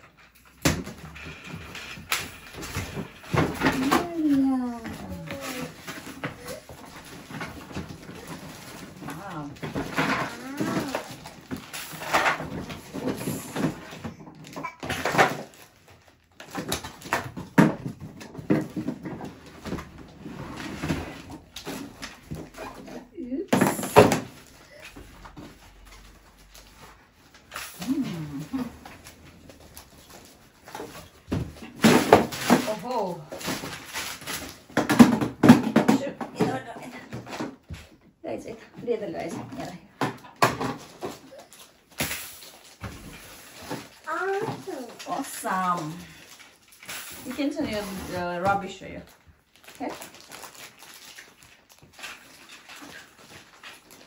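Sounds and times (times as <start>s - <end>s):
toddlers babbling: 3.8s - 6.8s, 10.2s - 11.1s
plastic toy parts knocking: 34.7s - 37.6s.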